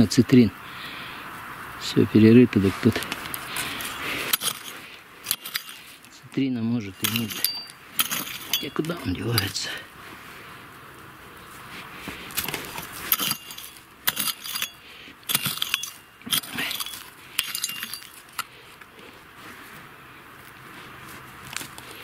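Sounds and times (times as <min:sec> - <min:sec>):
hand hoe scraping stony soil: 0:02.8 - 0:10.2, 0:11.4 - 0:22.0
stones clinking against metal: 0:03.6 - 0:09.7, 0:12.4 - 0:18.5.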